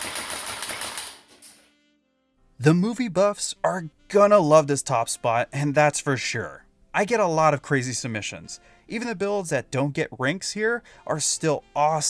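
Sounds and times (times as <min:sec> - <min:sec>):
airsoft rifle full-auto burst: 0:00.0 - 0:01.7.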